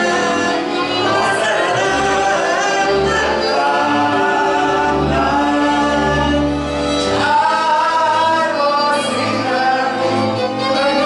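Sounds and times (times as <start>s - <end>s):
man singing: 0.0s - 11.0s
violin accompaniment: 0.0s - 11.0s.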